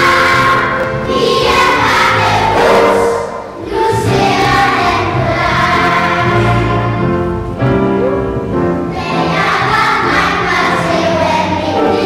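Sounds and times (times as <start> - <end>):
children's choir singing: 0.0 - 7.5, 8.8 - 12.0.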